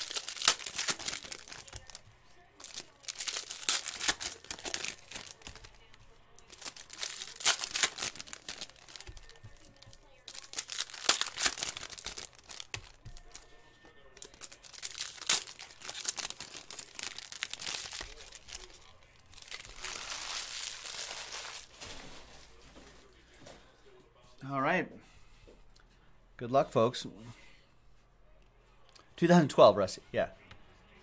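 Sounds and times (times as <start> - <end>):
card pack wrappers crinkling: 0.0 - 13.6, 14.2 - 22.4
cards being handled: 0.0 - 22.1.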